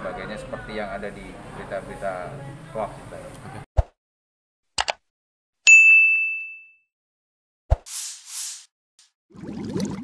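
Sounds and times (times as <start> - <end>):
notification bell ding: 5.7 - 6.8.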